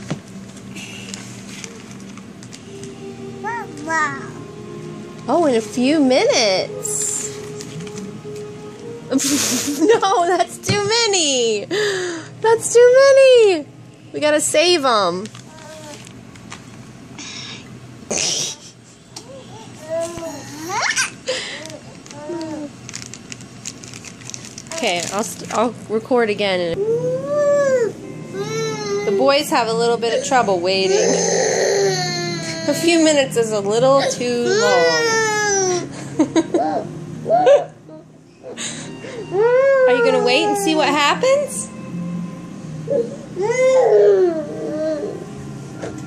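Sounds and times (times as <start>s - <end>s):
woman speaking: 5.3s - 7.4s, 9.8s - 11.8s, 12.4s - 15.3s, 24.7s - 26.8s, 29.1s - 31.4s, 32.7s - 35.2s, 39.8s - 41.8s
plastic bag crinkling: 15.2s - 16.9s, 21.3s - 25.8s.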